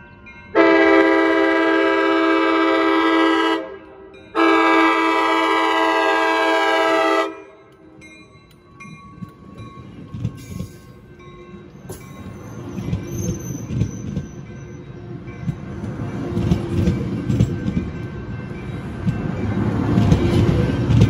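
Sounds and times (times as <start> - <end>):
train rolling past rumbling: 0.0 - 21.0
train air horn blasts: 0.6 - 7.6.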